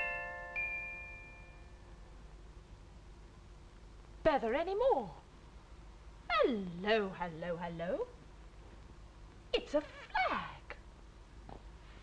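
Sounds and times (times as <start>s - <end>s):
glockenspiel note ringing: 0.0s - 1.8s
faint hum and hiss: 0.0s - 12.0s.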